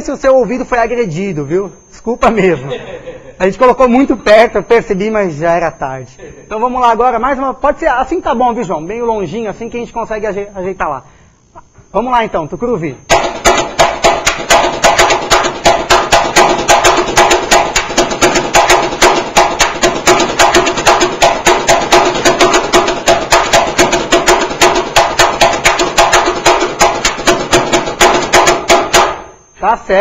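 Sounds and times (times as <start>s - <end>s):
snare drum samba rhythm: 13.1s - 29.4s.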